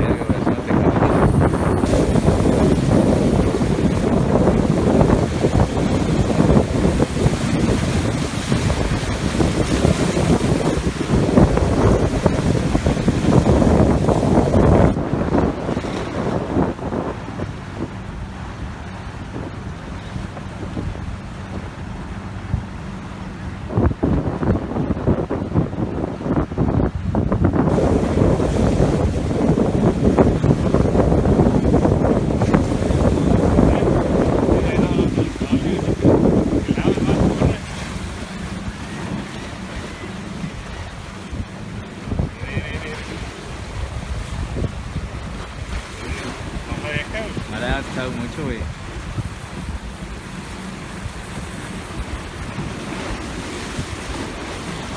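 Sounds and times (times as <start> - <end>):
waves breaking against rocks: 0.0 - 54.9
wind buffeting microphone: 0.0 - 54.9.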